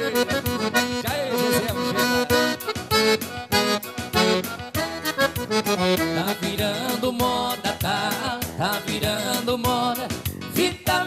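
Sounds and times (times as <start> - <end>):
accordion playing dance tune: 0.0 - 11.0.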